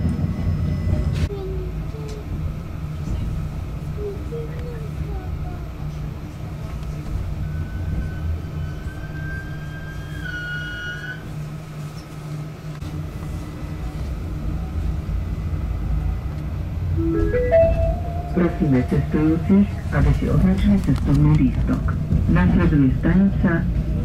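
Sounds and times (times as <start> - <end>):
railcar low running hum: 0.0 - 24.0
rising chime notes: 17.0 - 19.1.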